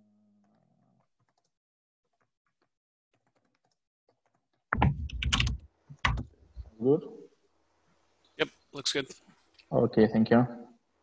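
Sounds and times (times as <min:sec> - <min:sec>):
computer keyboard typing: 0:03.2 - 0:06.3.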